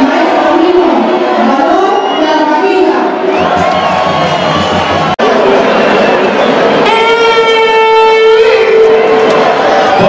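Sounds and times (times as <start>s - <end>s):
hand horn through loudspeaker: 6.8s - 9.1s.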